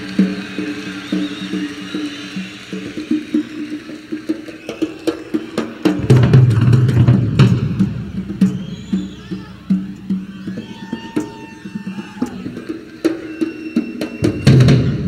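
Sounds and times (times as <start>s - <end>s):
rock drum kit playing: 0.0s - 13.4s.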